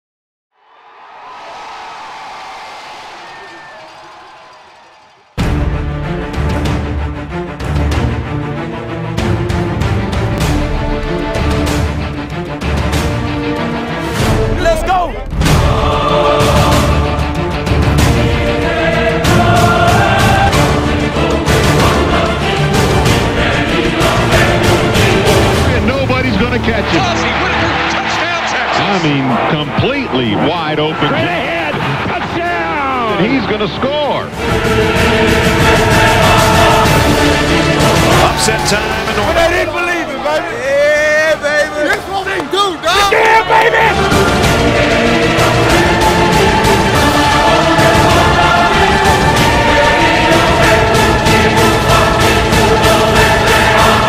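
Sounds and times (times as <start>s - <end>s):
stadium crowd cheering: 0.6s - 6.4s, 13.0s - 54.0s
sports announcer talking: 14.5s - 15.3s, 25.7s - 34.4s, 38.2s - 44.1s.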